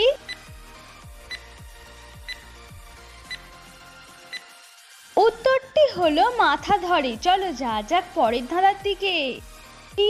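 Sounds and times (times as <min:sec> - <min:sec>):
countdown timer ticking blips: 0:00.0 - 0:02.5, 0:03.2 - 0:03.6, 0:04.2 - 0:04.6
soft background music: 0:00.0 - 0:10.0.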